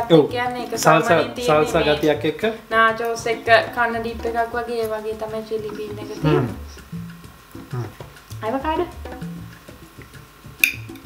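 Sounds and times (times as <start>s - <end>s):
people talking: 0.0s - 6.8s, 7.7s - 9.0s
background music with guitar: 0.0s - 11.0s.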